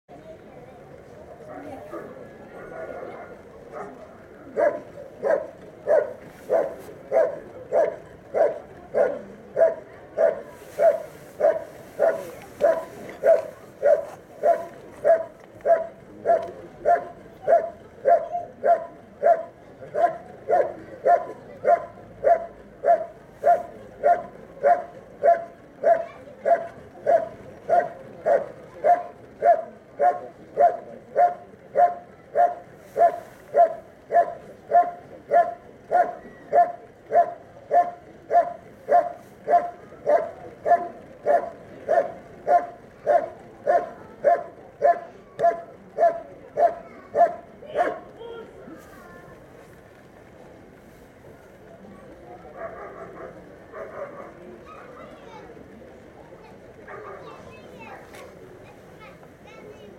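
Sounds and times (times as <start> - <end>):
dog barking: 1.9 - 48.1, 52.6 - 54.9, 56.9 - 57.4.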